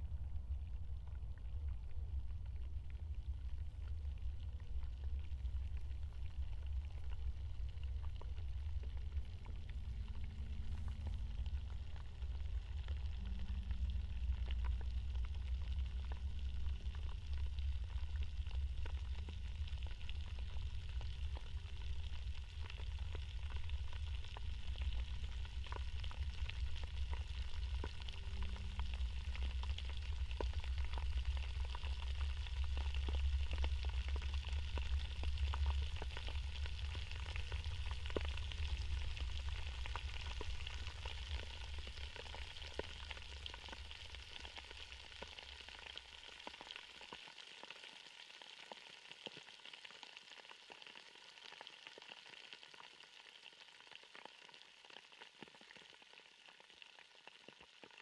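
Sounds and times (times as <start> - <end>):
wind rumbling on microphone: 0.0 - 42.1
steady crackling hiss: 0.0 - 58.0.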